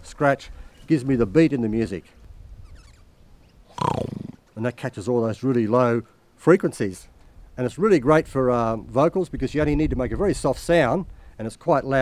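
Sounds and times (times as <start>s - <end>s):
room and outdoor noise: 0.0s - 12.0s
buzzing mouth growl: 3.7s - 4.5s.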